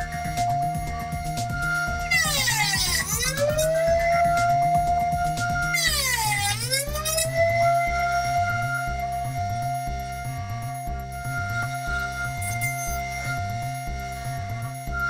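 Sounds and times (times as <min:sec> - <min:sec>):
background music with rhythmic bass: 0:00.0 - 0:15.0
router whining while cutting wood: 0:00.0 - 0:15.0.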